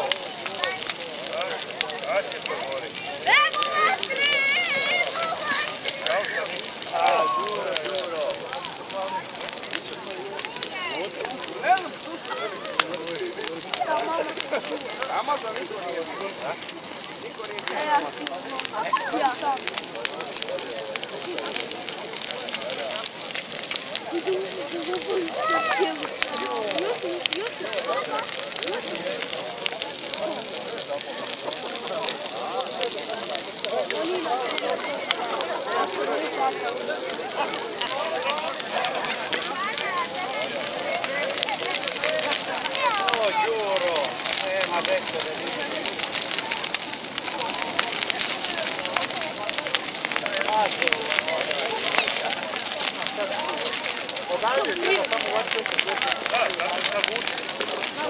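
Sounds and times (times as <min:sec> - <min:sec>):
bonfire crackling and snapping: 0:00.0 - 0:58.0
crowd chatter: 0:00.0 - 0:58.0.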